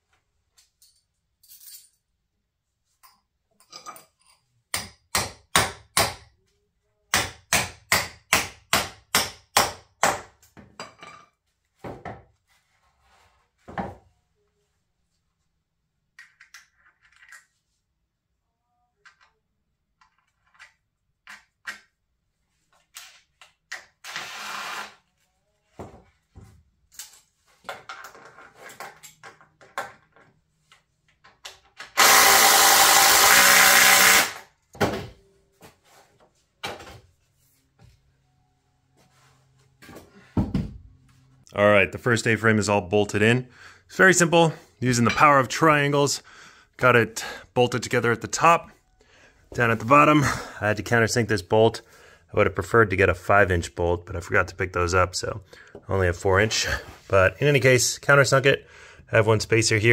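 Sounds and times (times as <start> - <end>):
hammer striking wood: 4.7 - 6.3, 7.1 - 10.3
cordless drill running: 24.1 - 25.0, 32.0 - 34.4.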